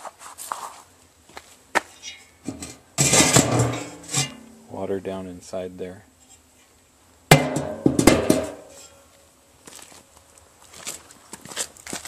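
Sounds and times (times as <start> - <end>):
steel cover clanking and scraping: 1.9 - 4.7, 7.3 - 9.0.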